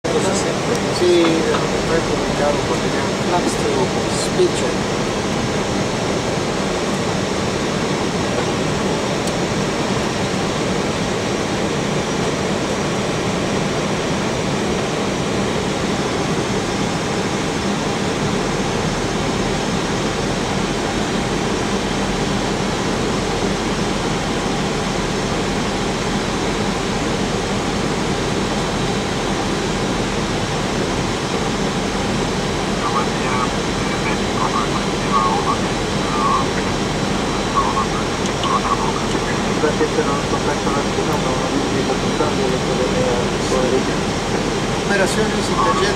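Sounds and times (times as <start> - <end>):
low engine hum: 0.0 - 45.9.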